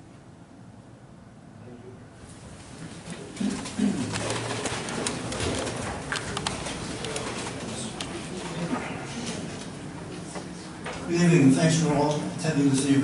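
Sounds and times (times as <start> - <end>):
wooden chairs creaking and knocking: 2.9 - 8.9.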